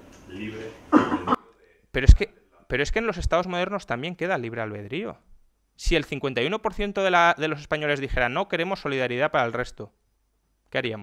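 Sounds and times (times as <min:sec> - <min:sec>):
loud cough: 0:00.9 - 0:01.5
person clearing throat: 0:00.9 - 0:01.5.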